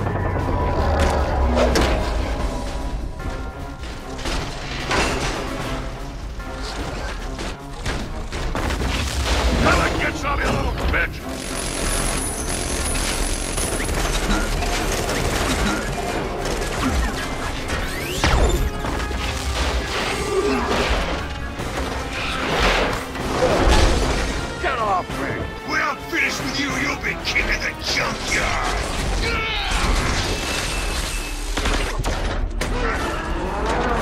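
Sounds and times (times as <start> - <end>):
mechanical clanks and whirs: 0.0 - 24.5.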